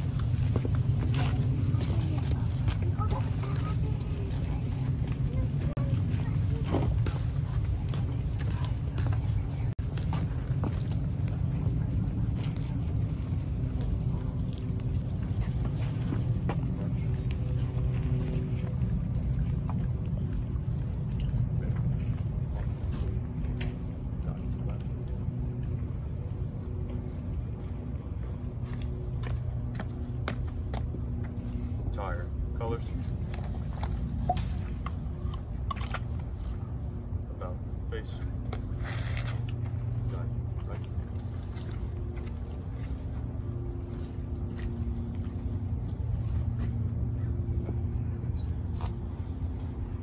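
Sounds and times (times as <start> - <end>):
low mechanical hum: 0.0 - 50.0.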